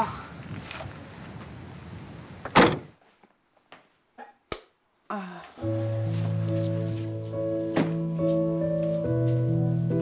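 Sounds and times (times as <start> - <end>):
car tailgate slamming shut: 2.5 - 2.9.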